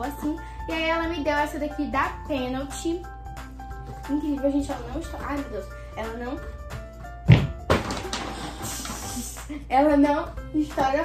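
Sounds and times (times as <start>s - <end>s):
background music: 0.0s - 11.0s
volleyball thump: 7.2s - 8.1s.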